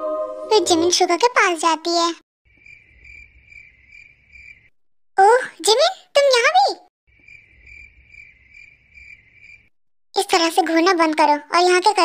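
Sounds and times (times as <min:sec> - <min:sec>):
crickets chirping: 0:02.5 - 0:04.7, 0:07.1 - 0:09.8.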